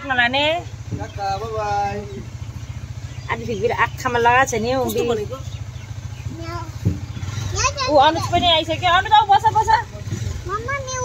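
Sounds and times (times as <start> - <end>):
small engine throbbing: 0.0 - 11.0.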